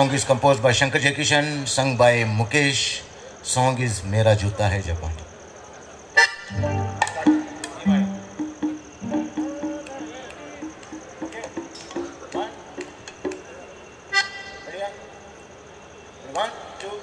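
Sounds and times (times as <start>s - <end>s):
loud reedy accordion chord: 6.2s - 10.4s
accordion short notes: 6.2s - 11.7s.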